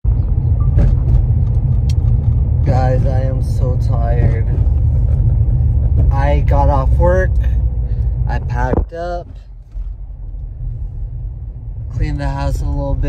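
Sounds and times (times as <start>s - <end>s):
car interior rumble: 0.0s - 13.0s
man speaking: 2.6s - 4.6s, 11.9s - 13.0s.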